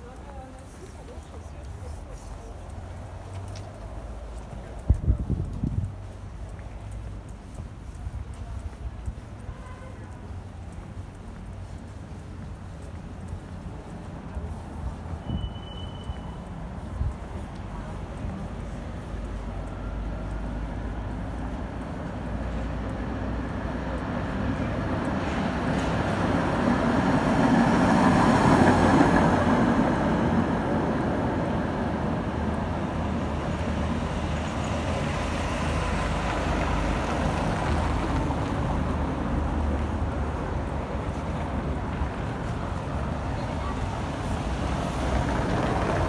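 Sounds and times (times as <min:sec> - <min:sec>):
steady traffic hum: 0:00.0 - 0:46.0.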